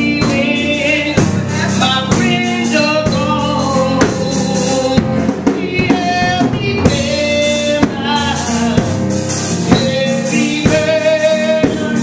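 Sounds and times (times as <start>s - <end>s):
band playing: 0.0s - 12.0s
drums: 0.0s - 12.0s
woman singing gospel: 0.0s - 12.0s.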